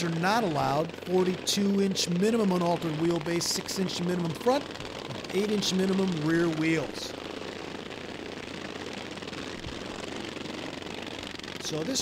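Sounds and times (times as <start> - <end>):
lawn mower engines running: 0.0 - 12.0.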